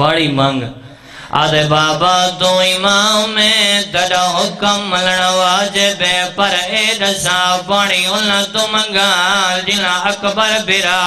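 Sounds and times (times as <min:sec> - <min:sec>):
man chanting a lament: 0:00.0 - 0:11.0.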